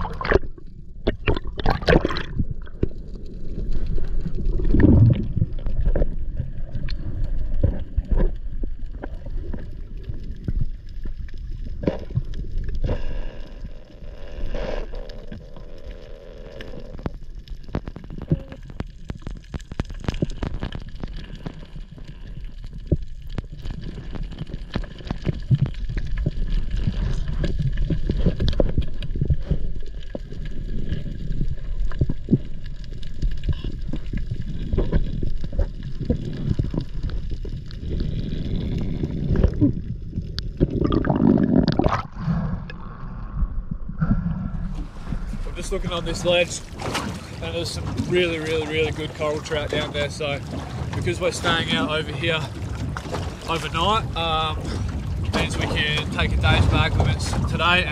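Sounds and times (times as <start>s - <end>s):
water gushing: 0.0s - 42.8s, 44.8s - 57.9s
low underwater rumble: 0.0s - 57.9s.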